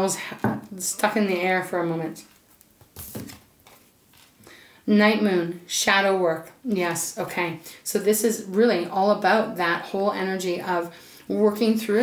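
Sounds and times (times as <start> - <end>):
deck of cards handling: 2.2 - 4.4.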